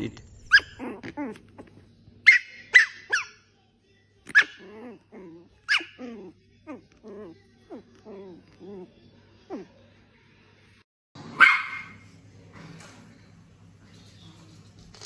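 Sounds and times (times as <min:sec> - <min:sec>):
puppy grumbling: 0:00.0 - 0:01.9, 0:04.3 - 0:09.8
small dogs yipping: 0:00.5 - 0:03.5, 0:04.3 - 0:05.0, 0:05.6 - 0:08.3.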